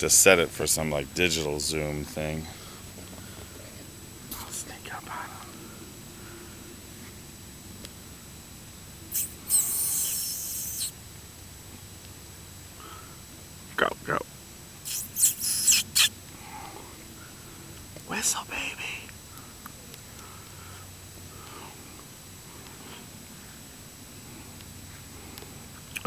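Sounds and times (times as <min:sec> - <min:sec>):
person whispering: 0:04.3 - 0:05.6, 0:18.0 - 0:19.1
person making squeaky mouth sounds: 0:09.1 - 0:11.0, 0:14.8 - 0:16.2.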